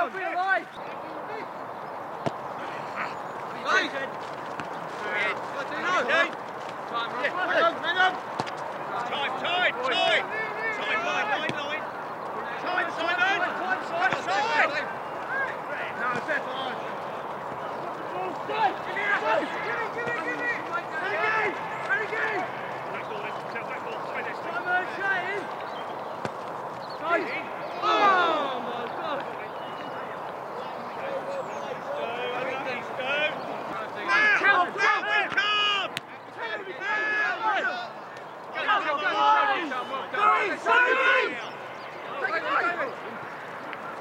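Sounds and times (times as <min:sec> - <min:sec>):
players shouting: 0:00.0 - 0:44.0
boot kicking football: 0:02.2 - 0:02.5, 0:04.1 - 0:04.9, 0:08.3 - 0:08.7, 0:26.1 - 0:26.9.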